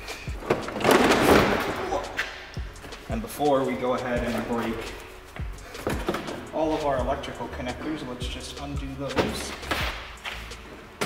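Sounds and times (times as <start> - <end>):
plastic cracking and scraping: 0.4 - 2.0.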